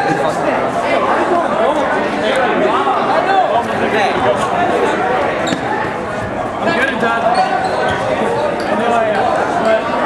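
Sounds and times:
players' voices in gymnasium: 0.0 - 10.0.

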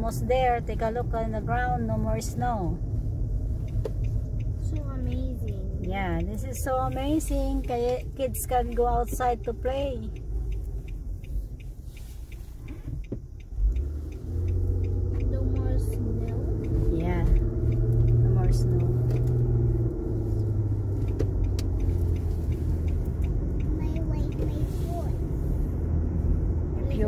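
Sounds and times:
car engine and road rumble: 0.0 - 27.0
light regular ticking: 0.0 - 27.0.

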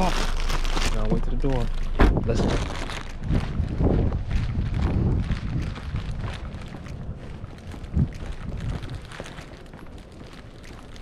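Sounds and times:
wind rumbling on microphone: 0.0 - 11.0
footsteps on concrete: 1.7 - 11.0
thump: 2.0 - 2.3.

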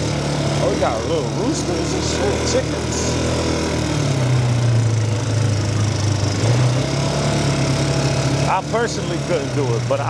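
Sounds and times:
quad bike engine running: 0.0 - 10.0.

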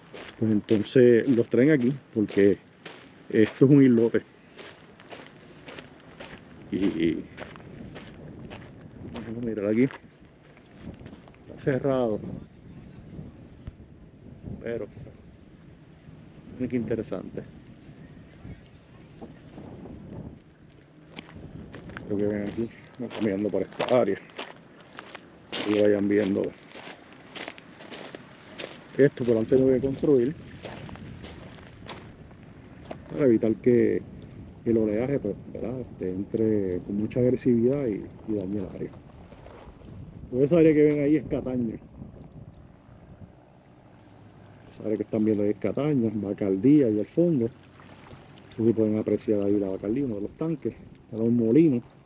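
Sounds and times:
footsteps crunching on stones: 0.0 - 11.4, 20.7 - 33.2, 38.4 - 40.0
calm water at shoreline: 0.0 - 52.0
wind rumbling on microphone: 0.0 - 52.0.

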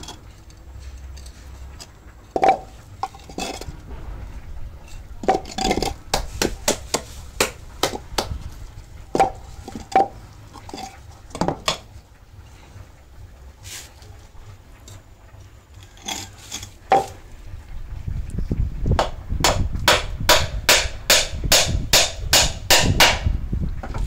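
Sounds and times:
wooden blocks clacking: 2.3 - 3.7, 5.2 - 8.4, 9.1 - 11.9, 16.9 - 17.2.

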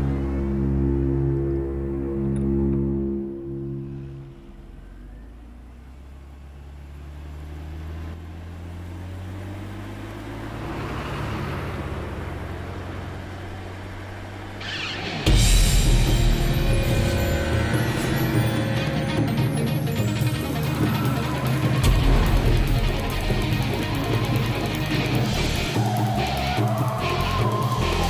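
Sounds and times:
tense film score: 0.0 - 8.4, 9.5 - 28.0
car road noise: 0.0 - 28.0.

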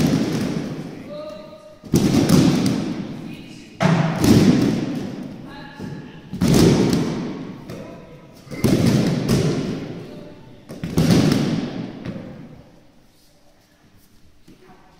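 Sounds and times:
bodies slapping onto judo mats: 0.0 - 0.9, 1.8 - 3.0.

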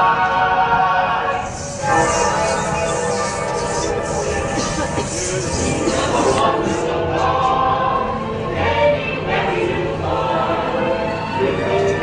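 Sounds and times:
choir singing over music: 0.0 - 12.0.

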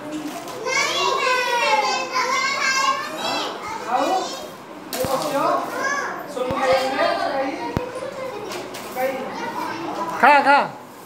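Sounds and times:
young children chattering: 0.0 - 10.9.

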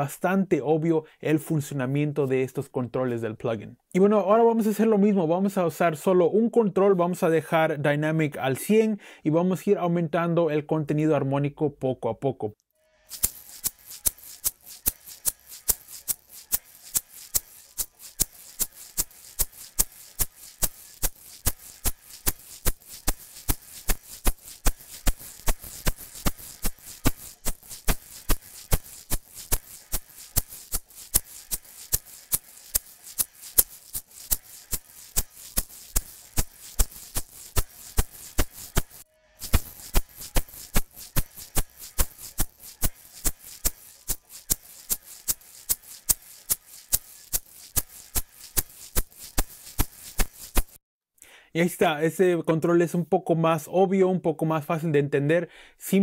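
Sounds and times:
egg shaker rhythm: 13.0 - 50.8.

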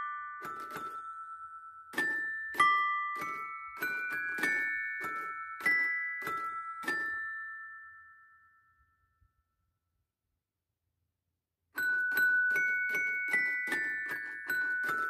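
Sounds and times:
bell-like chime tune: 0.0 - 9.3, 11.8 - 15.0.

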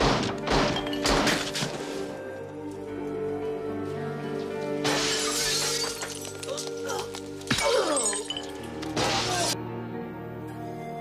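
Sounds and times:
film music score: 0.0 - 11.0
glass shattering: 0.2 - 2.0, 4.8 - 9.6
sharp glass clinks: 7.6 - 8.9.

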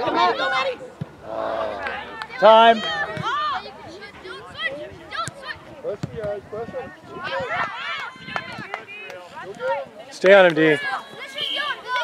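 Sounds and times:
distant boys shouting: 10.8 - 12.0.

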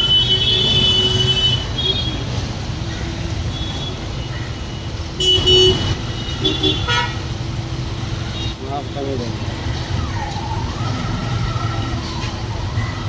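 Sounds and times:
vehicle horn: 0.0 - 2.2, 5.2 - 7.2
road traffic: 0.0 - 13.0.

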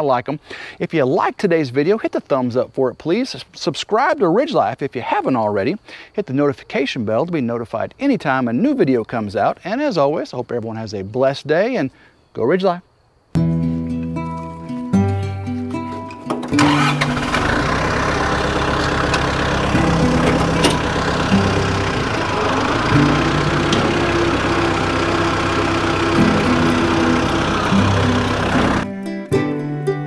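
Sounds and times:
acoustic guitar music: 13.4 - 30.0
tractor diesel engine running: 14.4 - 28.9.

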